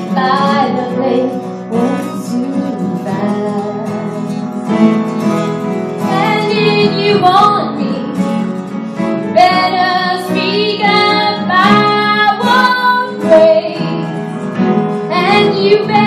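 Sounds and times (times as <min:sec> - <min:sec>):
woman singing: 0:00.0 - 0:05.2, 0:06.0 - 0:08.4, 0:09.2 - 0:14.1, 0:15.0 - 0:16.0
acoustic guitar: 0:00.0 - 0:16.0
piano: 0:00.0 - 0:16.0.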